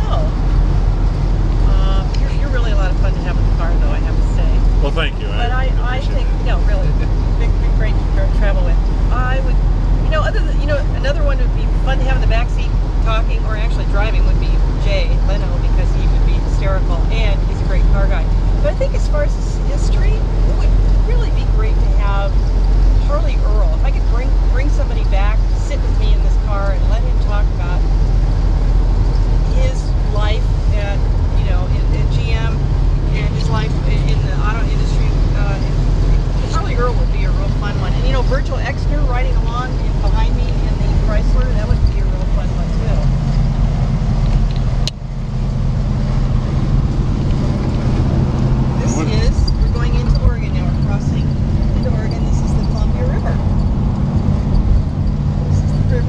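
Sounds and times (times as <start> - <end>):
car engine and road drone: 0.0 - 56.0
indistinct voices talking: 0.0 - 56.0.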